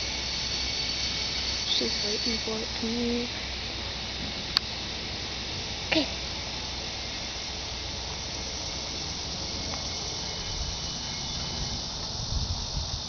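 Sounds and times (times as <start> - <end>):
insect chorus hissing: 0.0 - 13.0.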